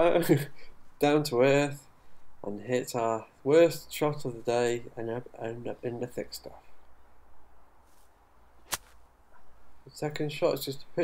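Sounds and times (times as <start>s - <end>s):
golf club striking ball in grass: 7.9s - 9.1s.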